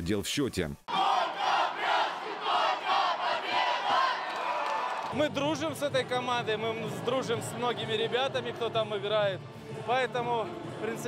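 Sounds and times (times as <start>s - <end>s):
crowd cheering and shouting: 0.9s - 8.6s.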